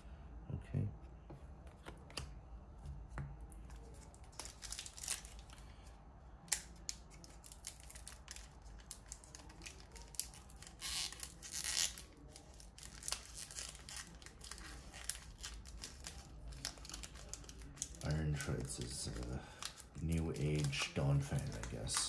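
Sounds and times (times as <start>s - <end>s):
foil wrapper crinkling: 3.8s - 5.6s, 6.5s - 22.0s
foil wrapper tearing: 4.3s - 5.6s, 6.5s - 22.0s
trading cards clicking and rustling: 15.1s - 22.0s.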